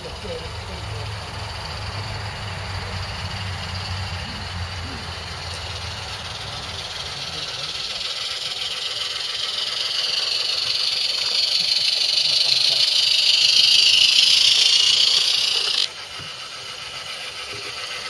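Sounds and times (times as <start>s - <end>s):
model steam locomotive hissing: 0.0s - 18.0s.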